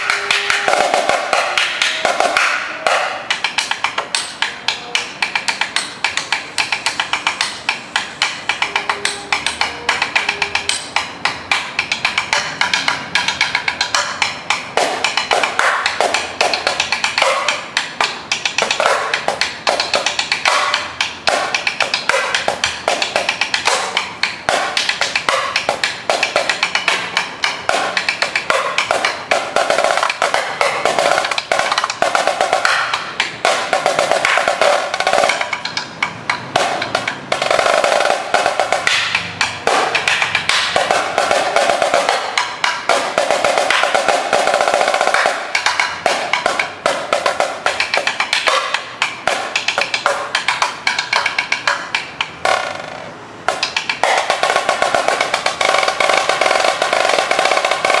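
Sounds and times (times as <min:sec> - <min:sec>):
marching snare drum solo: 0:00.0 - 0:03.3, 0:27.7 - 0:35.6, 0:36.6 - 0:50.6, 0:52.4 - 0:58.0.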